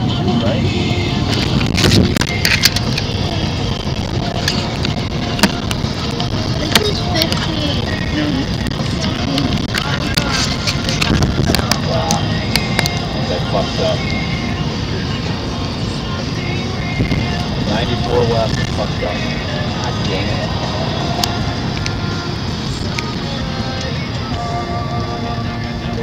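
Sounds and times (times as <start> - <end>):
car road and engine rumble: 0.0 - 26.0.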